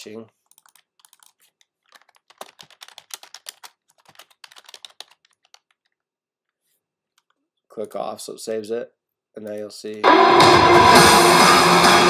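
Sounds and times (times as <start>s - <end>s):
typing on computer keyboard: 0.4s - 6.0s.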